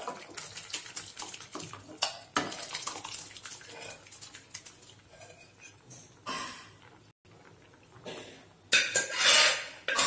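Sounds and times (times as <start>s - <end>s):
metal spoon scraping steel pot: 8.8s - 10.0s.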